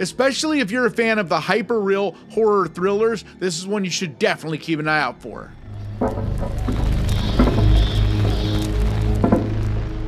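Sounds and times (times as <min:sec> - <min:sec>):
dark horror transition music: 0:05.5 - 0:10.0.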